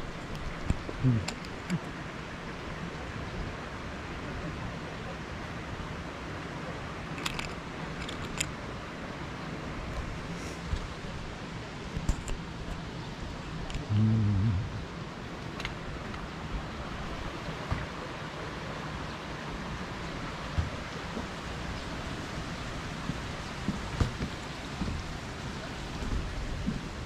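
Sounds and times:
steady rain hiss: 0:00.0 - 0:27.0
short low-pitched hum: 0:13.9 - 0:14.8.

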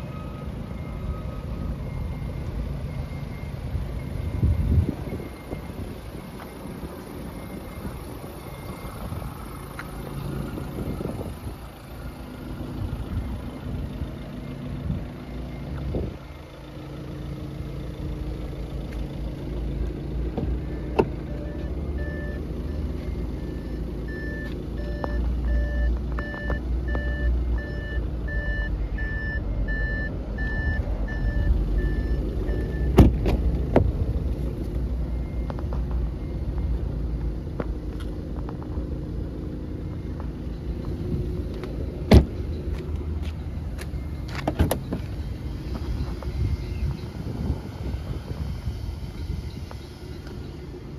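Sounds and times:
electronic warning beep: 0:00.0 - 0:10.3, 0:20.6 - 0:37.5, 0:39.6 - 0:47.8
car door thud: 0:32.9 - 0:34.0, 0:42.1 - 0:42.4, 0:44.3 - 0:45.0.

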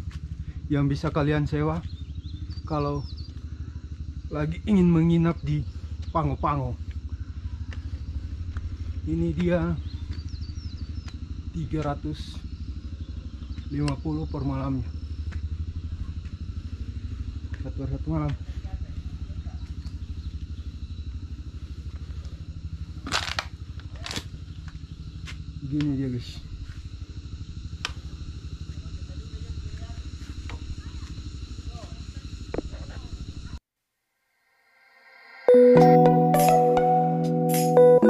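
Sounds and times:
pulsing low rumble: 0:00.0 - 0:33.6
small engine running: 0:00.0 - 0:33.6.

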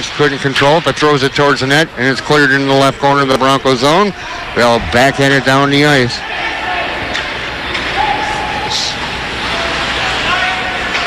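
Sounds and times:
hockey play on ice: 0:00.0 - 0:11.0
spectator noise: 0:02.2 - 0:08.8.

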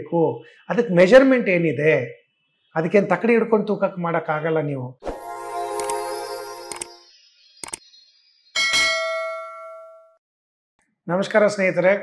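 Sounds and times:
bright bell ding: 0:08.6 - 0:10.2.

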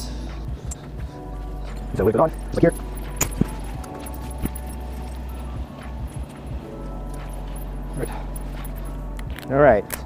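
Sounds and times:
cabin fans humming: 0:00.0 - 0:09.4
buckles clicking and jingling: 0:00.6 - 0:10.0.

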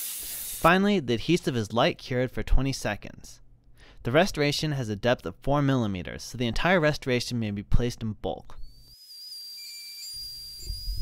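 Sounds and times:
high-pitched handpiece whine: 0:08.6 - 0:11.0.

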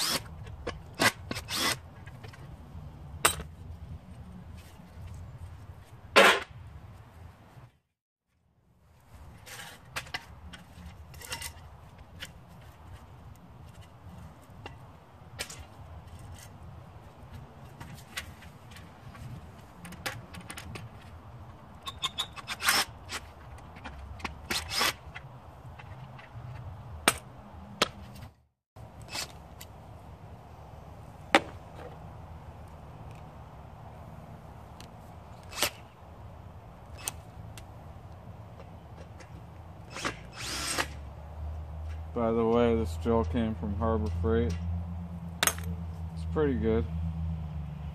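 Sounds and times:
tool scraping metal: 0:24.4 - 0:26.1.

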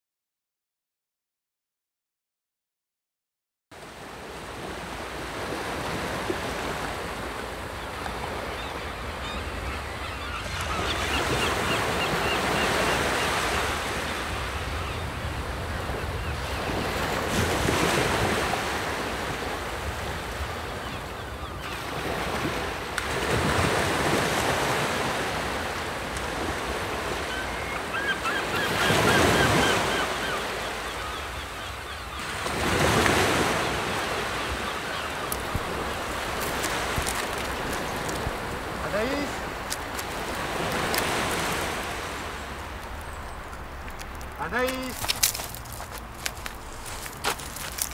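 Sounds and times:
wind gusting through trees: 0:04.1 - 0:47.9.

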